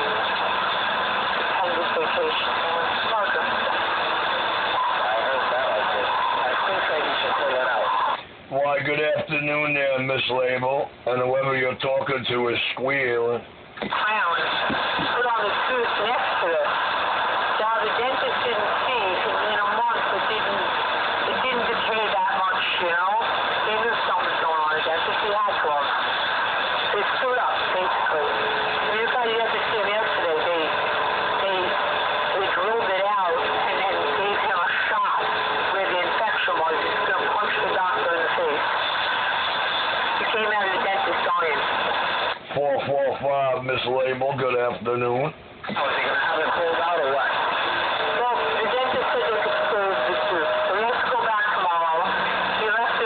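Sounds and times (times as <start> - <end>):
distorted radio voices: 0.0 - 53.0
radio static: 0.0 - 53.0.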